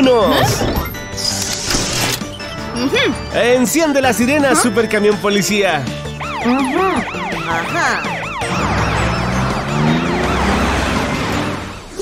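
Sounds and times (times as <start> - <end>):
cartoon siren wailing: 6.2 - 11.5.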